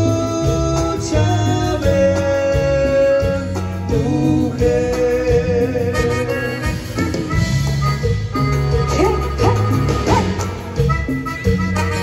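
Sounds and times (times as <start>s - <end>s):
accordion: 0.0s - 12.0s
bass guitar: 0.0s - 12.0s
congas: 0.0s - 12.0s
drums: 0.0s - 12.0s.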